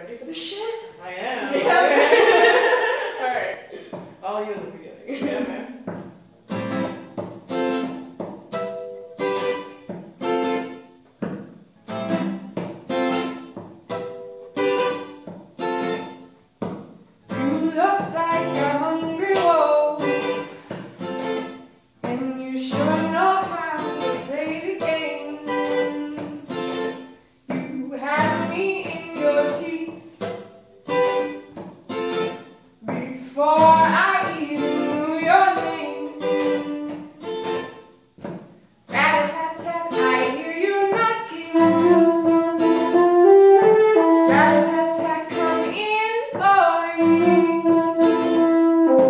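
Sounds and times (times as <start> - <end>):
acoustic guitar strumming: 5.2 - 49.0
woman singing: 17.3 - 20.3, 22.0 - 26.5, 27.5 - 30.1, 32.8 - 37.0, 38.9 - 42.4, 44.0 - 48.1.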